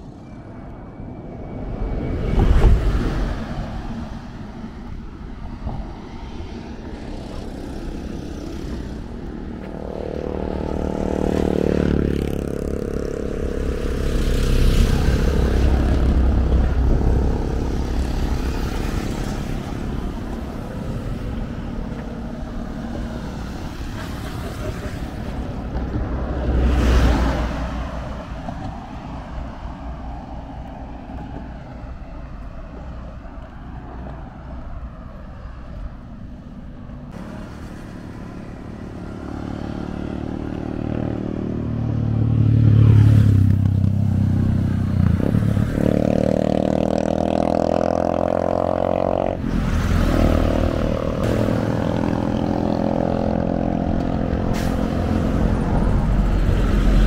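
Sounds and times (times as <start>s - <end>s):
steady traffic rumble: 0.0s - 57.0s
vehicles passing on road: 0.0s - 57.0s.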